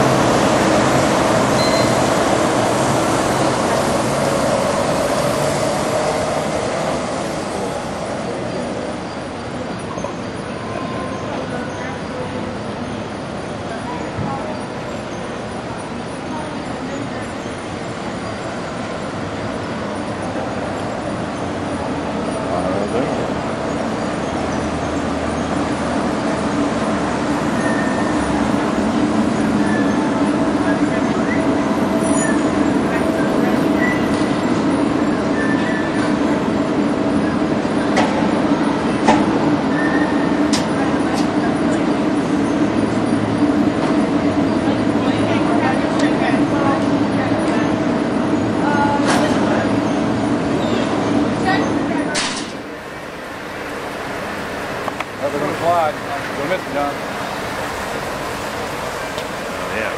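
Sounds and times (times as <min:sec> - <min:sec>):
electric train hum and rumble: 0:00.0 - 0:59.9.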